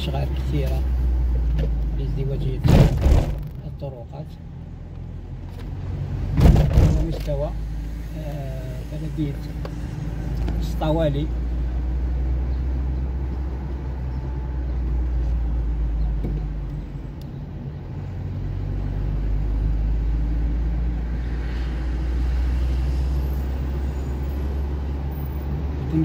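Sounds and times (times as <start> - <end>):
car engine and tyres rumbling: 0.0 - 26.0.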